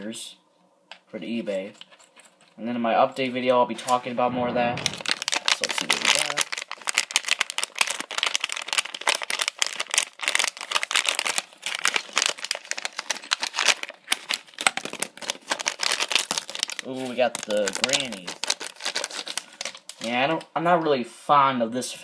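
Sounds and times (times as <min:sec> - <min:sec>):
foil packet crinkling: 0:04.8 - 0:20.3.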